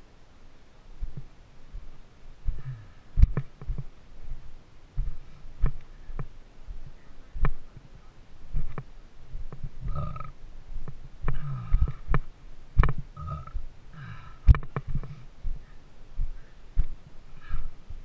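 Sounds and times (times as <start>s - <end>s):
low rumbling: 0.9s - 18.0s
boots knocking and scraping on rock: 2.5s - 4.4s, 8.5s - 10.2s, 10.8s - 13.1s.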